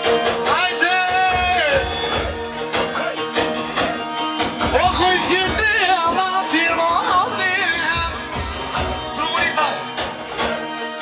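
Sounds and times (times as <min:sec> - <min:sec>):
dance music over loudspeakers: 0:00.0 - 0:11.0.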